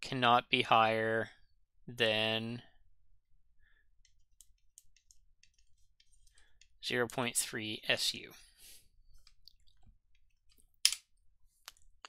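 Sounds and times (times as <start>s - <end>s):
stylus clicking on pen tablet: 4.0s - 7.2s.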